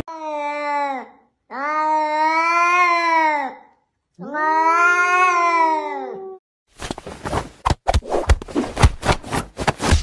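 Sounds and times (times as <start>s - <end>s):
cat yowling: 4.2s - 6.4s.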